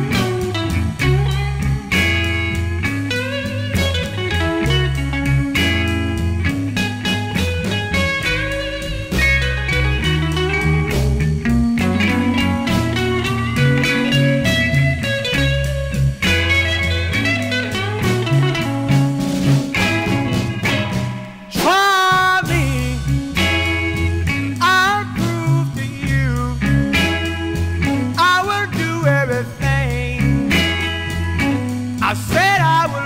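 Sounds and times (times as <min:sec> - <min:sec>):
bass: 0:00.0 - 0:33.0
drums: 0:00.0 - 0:33.0
electric guitar: 0:00.0 - 0:33.0.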